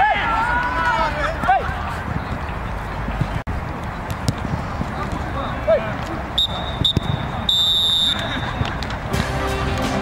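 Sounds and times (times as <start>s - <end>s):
referee's whistle blasts: 6.4s - 8.6s.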